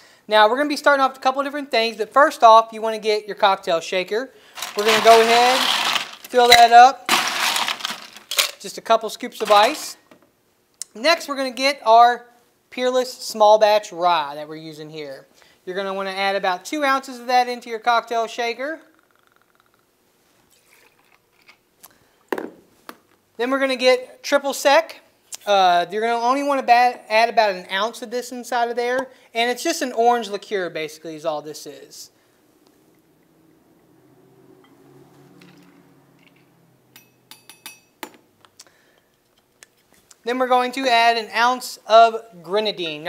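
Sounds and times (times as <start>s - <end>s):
liquid trickling into metal cup: 20.5s - 21.5s
metal and glass clinks: 35.5s - 38.0s.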